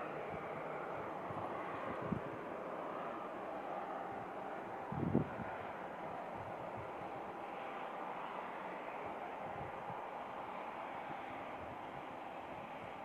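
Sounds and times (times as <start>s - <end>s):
distant jet engines running: 0.0s - 13.0s.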